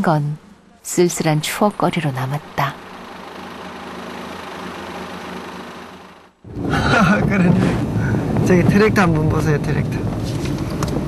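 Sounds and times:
engine and road noise: 0:00.0 - 0:11.0
engine and road noise inside car: 0:00.0 - 0:11.0.

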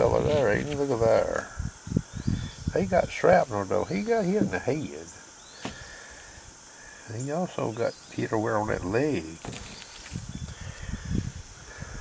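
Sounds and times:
insect drone: 0:00.0 - 0:12.0.

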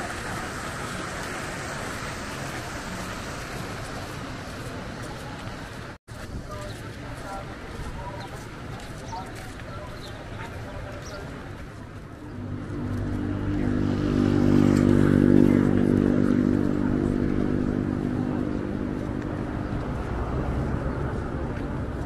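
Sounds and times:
vehicle engine passing: 0:12.3 - 0:22.0.

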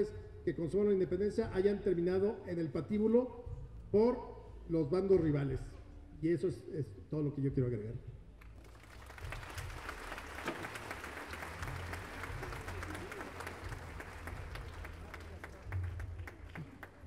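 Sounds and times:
audience applauding: 0:08.5 - 0:17.0.

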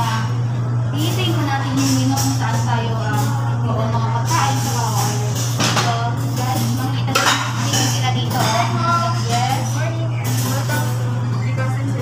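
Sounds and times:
steady low hum: 0:00.0 - 0:12.0
dishes and cutlery clinking: 0:04.2 - 0:12.0.

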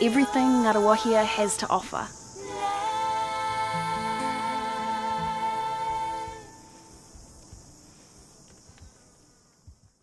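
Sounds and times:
high-pitched insect chorus: 0:00.0 - 0:10.0
held sung chord: 0:02.4 - 0:06.9.

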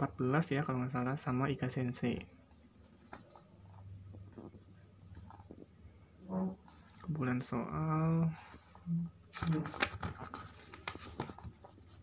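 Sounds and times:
book pages turning: 0:02.8 - 0:05.7, 0:08.4 - 0:12.0.

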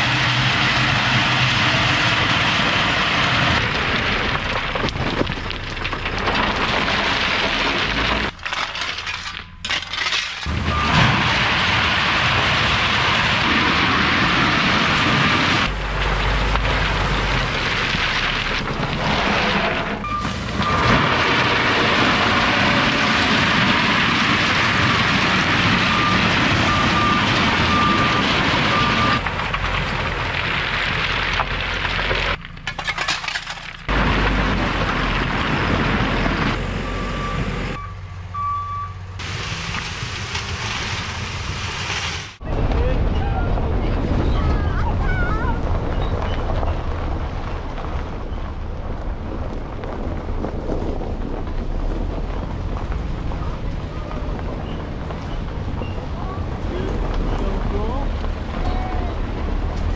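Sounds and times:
dump truck engine running: 0:00.0 - 0:32.8, 0:33.7 - 0:59.9
gravel rushing and rattling: 0:00.0 - 0:37.8, 0:39.2 - 0:59.9.

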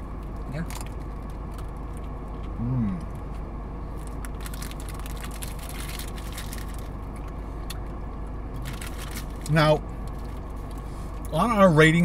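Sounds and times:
air-conditioning fan hiss: 0:00.0 - 0:12.0
car engine idling: 0:00.0 - 0:12.0
paper wrappers crinkling: 0:04.0 - 0:06.9, 0:08.6 - 0:09.5.

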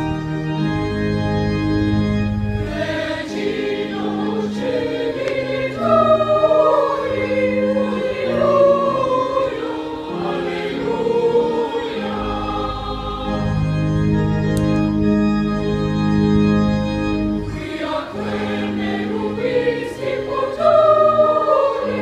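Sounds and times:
organ chords: 0:00.0 - 0:22.0
boys' choir singing: 0:02.6 - 0:13.9, 0:17.5 - 0:22.0.

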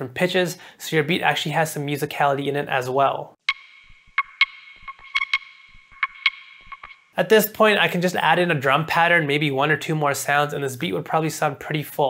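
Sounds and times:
steady ringing tone: 0:03.5 - 0:07.2.

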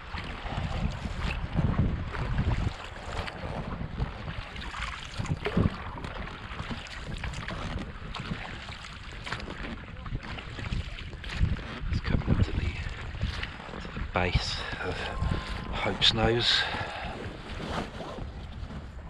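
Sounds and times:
water lapping and splashing: 0:00.0 - 0:19.0
wind buffeting microphone: 0:00.0 - 0:19.0.

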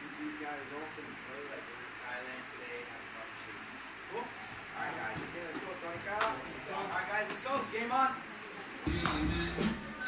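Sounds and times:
men talking: 0:00.2 - 0:08.2
music with heavy bass beat: 0:08.9 - 0:10.0.

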